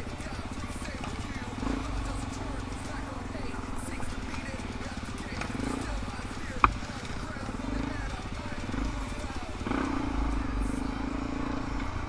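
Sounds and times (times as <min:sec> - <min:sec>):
dirt bike engine chugging: 0:00.0 - 0:12.0.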